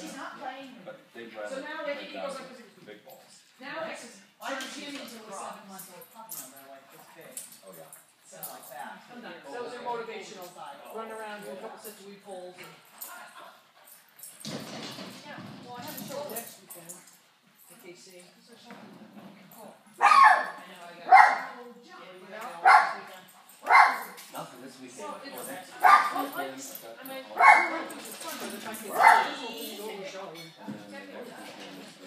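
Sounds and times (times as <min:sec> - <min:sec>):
murmur of voices: 0:19.9 - 0:32.0
dog barking: 0:20.0 - 0:21.6, 0:22.6 - 0:24.2, 0:25.8 - 0:26.2, 0:27.4 - 0:27.8, 0:28.9 - 0:29.4.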